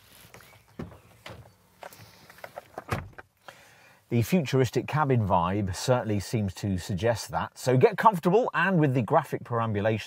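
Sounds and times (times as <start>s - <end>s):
clicks and rustles: 0.0s - 3.4s
car door opening: 0.6s - 3.3s
car door shutting: 0.7s - 3.2s.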